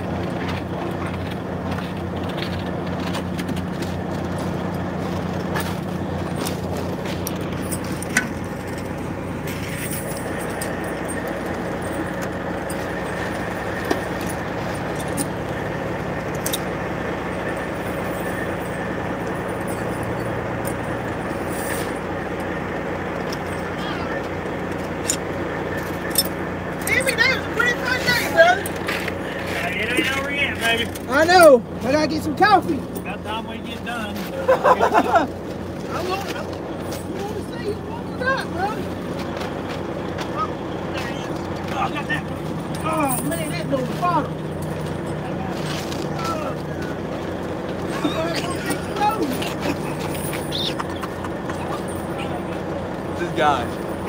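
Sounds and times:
truck diesel engine idling: 0:00.0 - 0:54.0
metallic clinks of tire chains: 0:01.3 - 0:39.8, 0:40.4 - 0:54.0.

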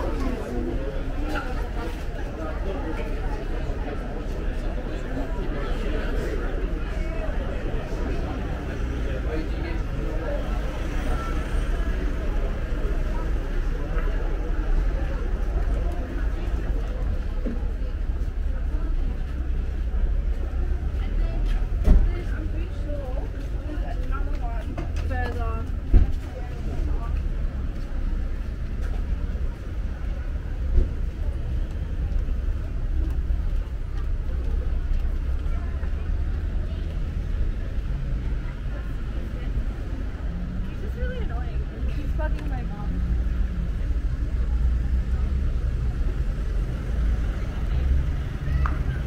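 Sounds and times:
passers-by talking: 0:00.0 - 0:49.0
traffic rumble: 0:00.0 - 0:49.0.

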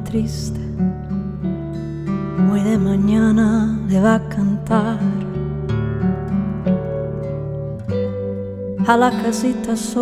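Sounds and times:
woman singing: 0:00.0 - 0:01.0, 0:02.2 - 0:05.7, 0:08.7 - 0:10.0
acoustic guitar picking: 0:00.0 - 0:10.0.

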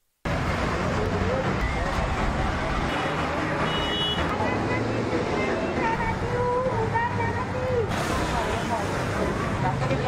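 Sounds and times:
street traffic noise: 0:00.2 - 0:10.0.

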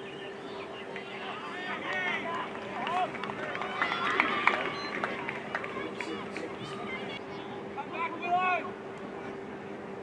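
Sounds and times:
steady low hum: 0:00.0 - 0:10.0
players shouting: 0:01.0 - 0:07.2.

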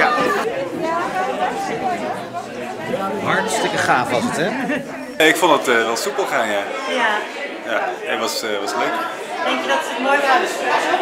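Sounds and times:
chatter of many guests: 0:00.0 - 0:11.0.

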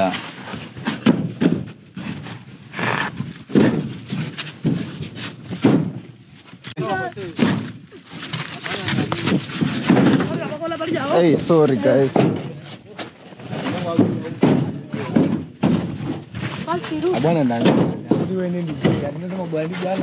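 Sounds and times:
bricks knocking together: 0:00.7 - 0:06.2, 0:07.1 - 0:10.6, 0:12.0 - 0:19.2
people talking: 0:06.8 - 0:07.6, 0:08.5 - 0:09.5, 0:10.1 - 0:15.4, 0:16.6 - 0:20.0.

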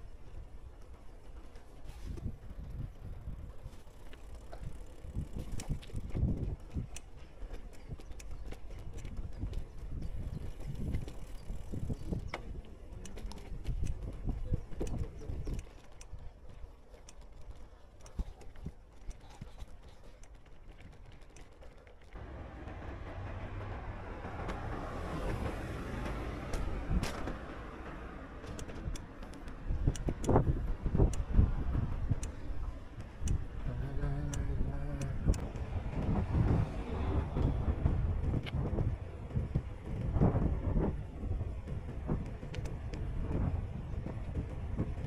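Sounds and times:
bicycle tyres rumbling on paving: 0:00.0 - 0:45.0
wind on microphone: 0:01.8 - 0:16.3, 0:23.0 - 0:45.0
road traffic: 0:22.0 - 0:45.0
car approaching: 0:22.1 - 0:45.0.

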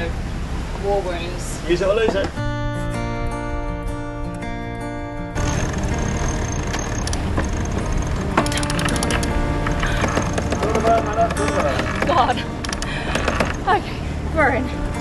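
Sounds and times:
wind: 0:00.0 - 0:15.0
acoustic guitar music: 0:01.8 - 0:15.0
winch rapid clicking: 0:05.4 - 0:13.7.

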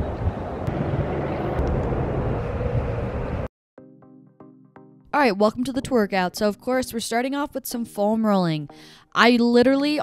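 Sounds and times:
low street rumble: 0:00.0 - 0:03.5
soft background music: 0:03.8 - 0:10.0.

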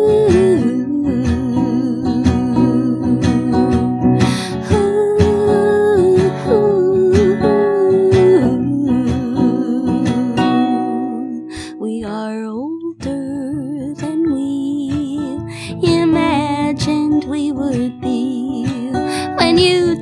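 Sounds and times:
strummed acoustic guitar: 0:00.0 - 0:20.0
woman singing with vibrato: 0:00.0 - 0:20.0.

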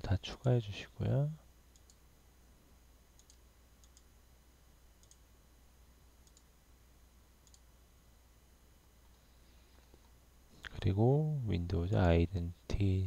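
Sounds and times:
low steady hum: 0:00.0 - 0:13.0
computer mouse clicks: 0:01.7 - 0:02.0, 0:03.2 - 0:04.1, 0:05.0 - 0:05.2, 0:06.2 - 0:06.5, 0:07.4 - 0:07.7.

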